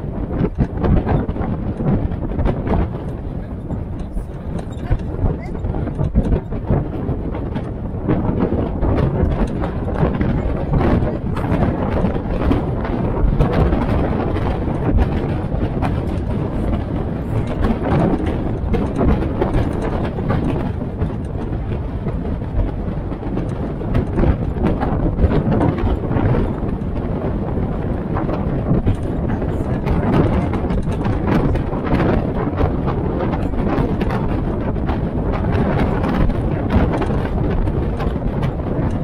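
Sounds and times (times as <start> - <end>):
jeep engine running: 0.0 - 39.0
vehicle body rattling and knocking: 0.0 - 39.0.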